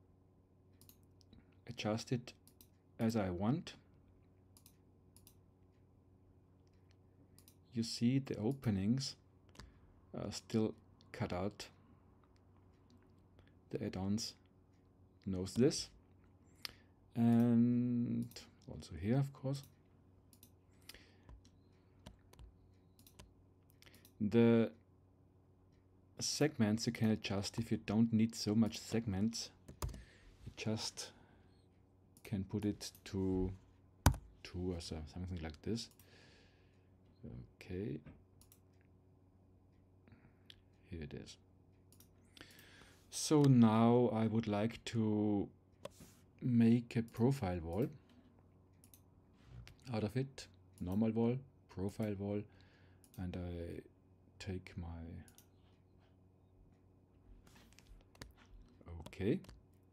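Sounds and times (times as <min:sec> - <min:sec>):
faint electrical hum: 0:00.0 - 0:59.9
computer mouse clicks: 0:00.8 - 0:01.4, 0:04.6 - 0:05.4, 0:06.7 - 0:07.6, 0:19.6 - 0:24.2, 0:38.4 - 0:38.9, 0:41.9 - 0:42.6.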